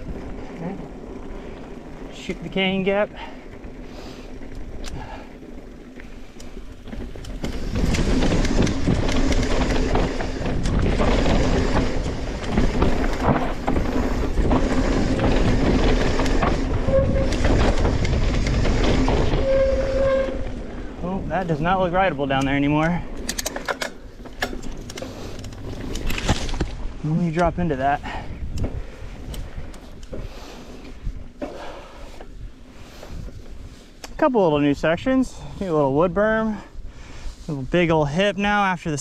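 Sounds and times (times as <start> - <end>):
bike chain and frame rattling: 0.0 - 35.5
bike tyres on dirt: 0.0 - 39.0.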